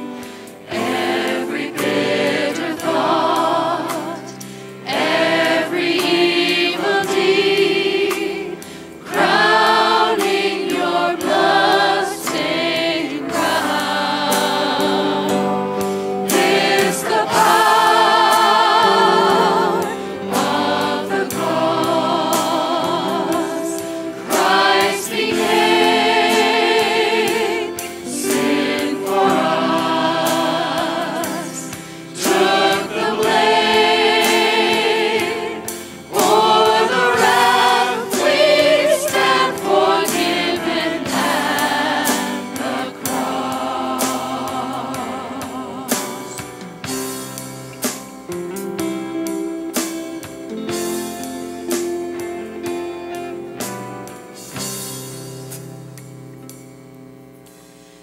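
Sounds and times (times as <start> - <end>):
choir singing: 0.0 - 46.7
band accompaniment: 0.0 - 56.9
percussive beat: 36.1 - 44.4.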